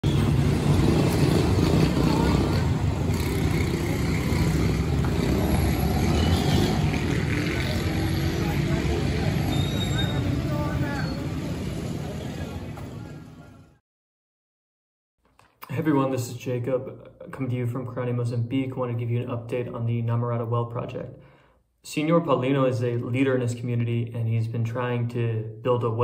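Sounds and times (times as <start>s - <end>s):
street traffic: 0.0s - 13.8s
vehicle engine rumbling: 0.0s - 13.8s
people talking: 7.5s - 13.8s, 15.6s - 21.1s, 21.9s - 26.0s.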